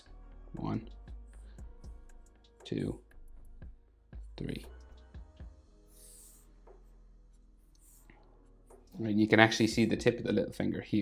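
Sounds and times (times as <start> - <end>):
marker scratching on paper: 5.9 - 6.9, 7.7 - 8.2.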